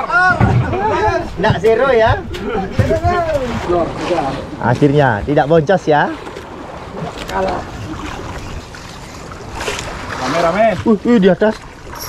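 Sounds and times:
sea noise around boat: 0.0s - 12.0s
wind: 0.0s - 12.0s.

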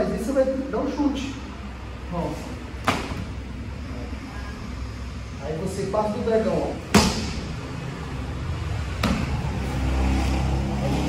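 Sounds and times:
sharp smack of karate contact: 2.8s - 3.3s.

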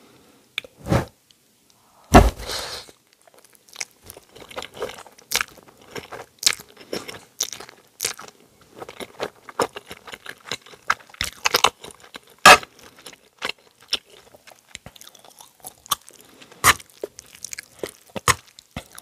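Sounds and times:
chewing with wet mouth smacks: 3.2s - 19.0s.

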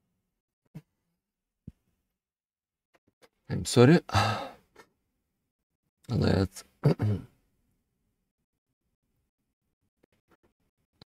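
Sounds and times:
man sighing: 4.1s - 4.7s.

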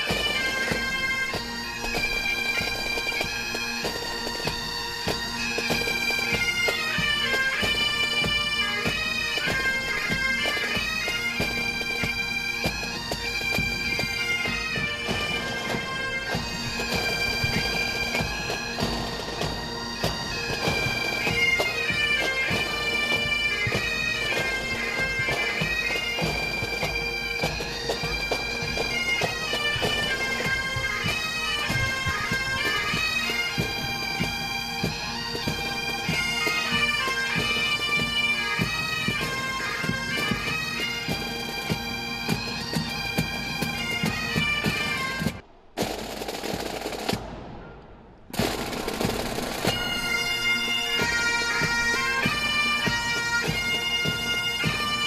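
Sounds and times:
bagpipes playing over drones: 0.0s - 45.4s, 48.4s - 55.0s
rapid sharp drum strikes: 45.8s - 50.0s.

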